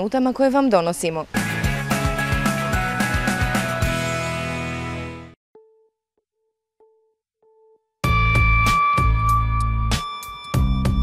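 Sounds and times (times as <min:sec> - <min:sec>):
faint electronic beep tone: 0:09.0 - 0:11.0.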